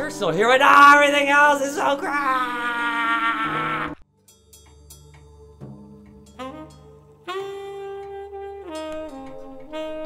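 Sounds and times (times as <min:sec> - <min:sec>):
boy screaming: 0:02.0 - 0:04.0.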